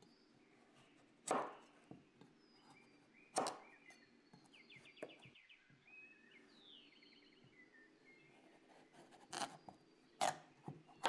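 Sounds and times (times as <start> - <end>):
knife chopping on cutting board: 1.2 - 1.6, 3.4 - 3.6.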